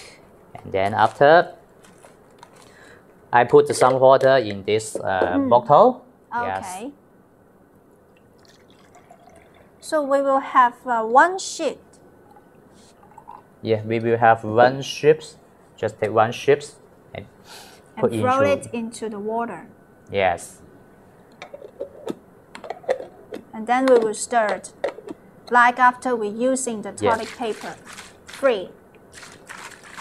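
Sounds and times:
small water splashes: 8.2s - 9.8s
water pouring into a bottle: 8.2s - 9.8s, 29.1s - 30.0s.

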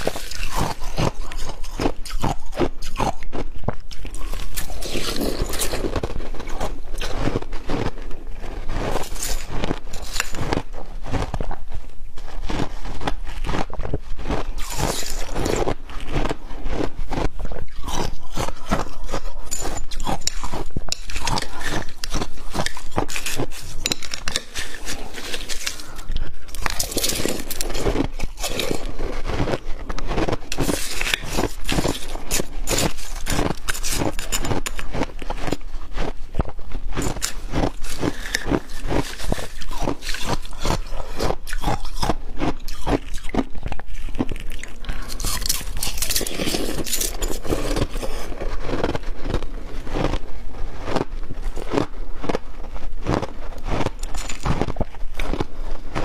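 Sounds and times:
spoon scooping crushed ice: 0.0s - 11.3s, 12.4s - 36.1s, 36.9s - 50.2s, 53.6s - 55.4s
ice crunched in mouth: 0.0s - 11.6s, 12.4s - 56.0s.

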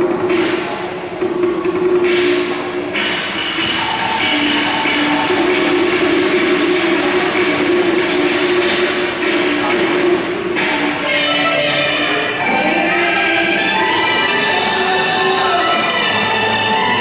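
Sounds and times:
opera ensemble playing: 2.8s - 17.0s.

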